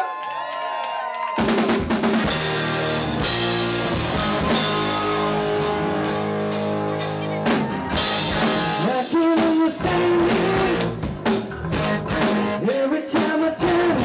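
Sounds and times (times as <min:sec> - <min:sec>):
rock band playing: 0:01.4 - 0:14.0.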